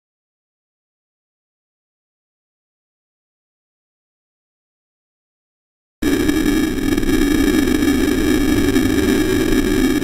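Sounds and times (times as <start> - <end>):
loud distorted rock band: 6.0 - 10.0.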